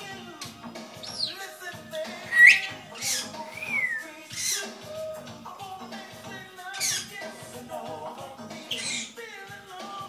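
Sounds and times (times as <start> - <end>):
song playing in background: 0.0 - 10.0
parrot whistling: 1.0 - 1.4, 2.2 - 4.7, 6.8 - 7.1, 8.7 - 9.2.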